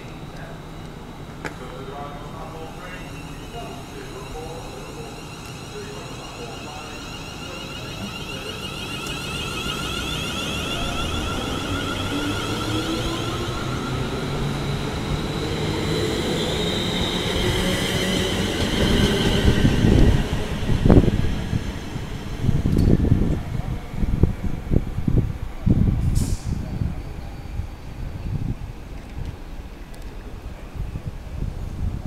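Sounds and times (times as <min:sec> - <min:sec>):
electric train traction whine: 0:00.0 - 0:26.0
low buffeting of passing train: 0:00.0 - 0:32.0.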